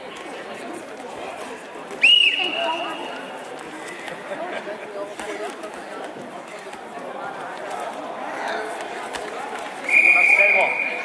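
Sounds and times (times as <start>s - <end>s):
hall chatter: 0.0s - 11.0s
referee's whistle blast: 9.9s - 11.0s.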